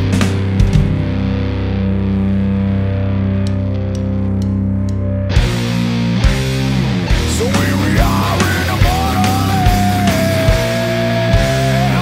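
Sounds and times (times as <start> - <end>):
distorted guitar and bass chord: 0.0 - 12.0.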